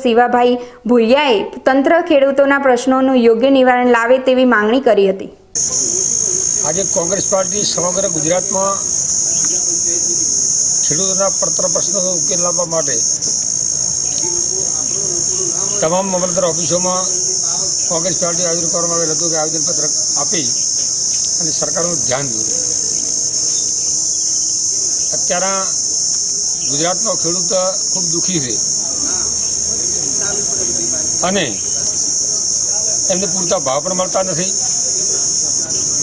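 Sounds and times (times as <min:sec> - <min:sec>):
high-pitched insect chorus: 0:05.6 - 0:36.0
man speaking: 0:10.8 - 0:13.4, 0:15.7 - 0:20.6, 0:21.4 - 0:22.8, 0:26.7 - 0:29.4, 0:32.8 - 0:35.9.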